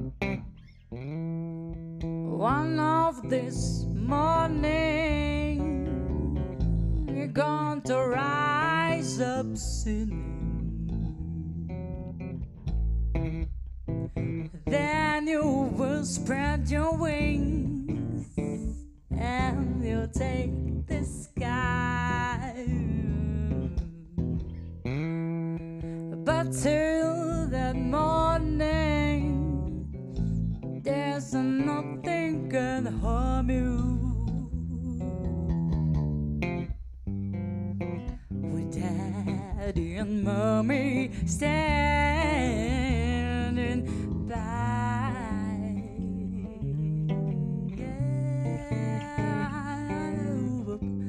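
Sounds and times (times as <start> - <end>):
electric bass sustained notes: 0.0 - 51.0
woman singing with vibrato: 2.3 - 6.5, 7.1 - 11.3, 14.5 - 24.4, 26.1 - 29.9, 30.8 - 35.5, 38.4 - 51.0.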